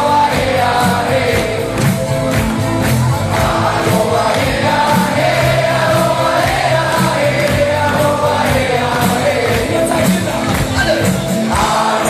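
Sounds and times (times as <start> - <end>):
crowd singing along: 0.0 - 12.0
live band music: 0.0 - 12.0.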